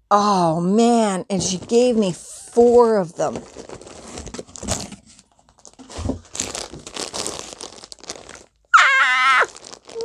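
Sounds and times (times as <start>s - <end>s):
plastic bags crinkling: 3.2s - 10.0s
high-pitched vocal squeal: 8.8s - 10.0s.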